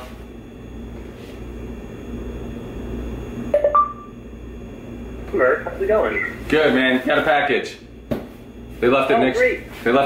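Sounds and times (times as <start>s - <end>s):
low hum and hiss: 0.0s - 10.0s
two-tone electronic beep: 3.6s - 4.1s.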